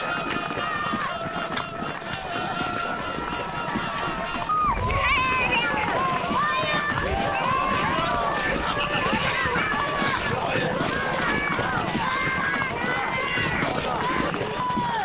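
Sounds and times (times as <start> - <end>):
people calling and shouting: 0.0 - 15.0
reindeer running through snow: 0.0 - 15.0.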